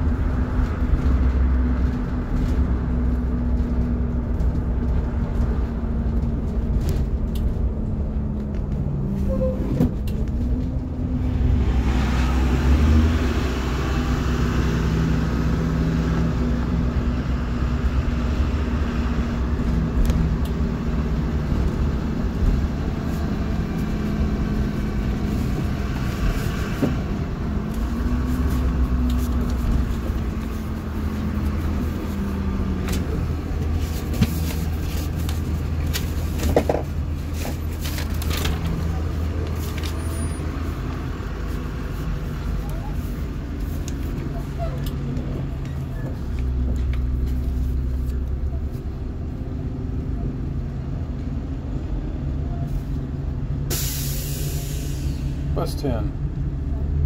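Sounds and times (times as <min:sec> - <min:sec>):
bus engine drone: 0:00.0 - 0:57.0
road and tyre noise: 0:00.0 - 0:57.0.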